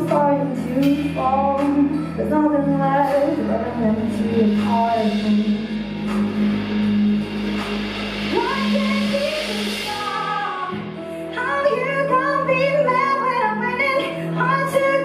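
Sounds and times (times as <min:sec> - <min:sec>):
woman singing: 0:00.0 - 0:06.0, 0:08.3 - 0:15.0
live rock band: 0:00.0 - 0:15.0
steady low drone: 0:00.7 - 0:11.4
cymbal wash: 0:04.0 - 0:12.0.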